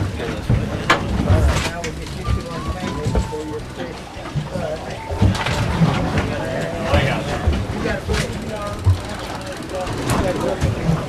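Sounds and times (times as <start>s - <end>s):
boat noise: 0.0s - 11.0s
people talking and calling out: 0.0s - 11.0s.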